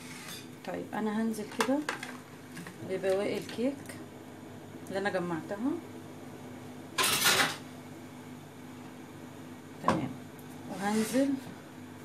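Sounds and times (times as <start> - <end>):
faint steady hum: 0.0 - 12.0
rustling scrape: 10.7 - 11.4.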